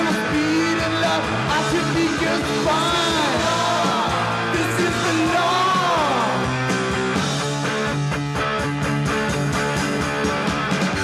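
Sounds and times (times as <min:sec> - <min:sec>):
drums: 0:00.0 - 0:11.0
electric guitars: 0:00.0 - 0:11.0.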